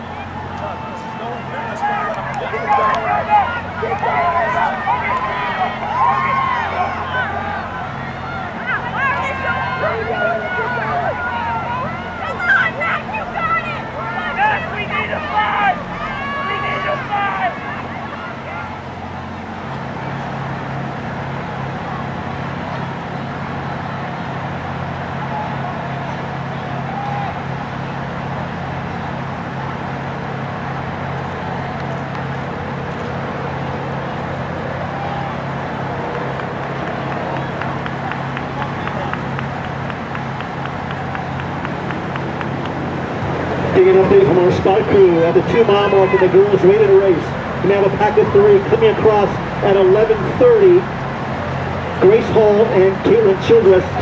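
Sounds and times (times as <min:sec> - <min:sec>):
murmur of voices: 0:00.0 - 0:54.0
spectators shouting: 0:00.0 - 0:54.0
steady low hum: 0:00.0 - 0:54.0.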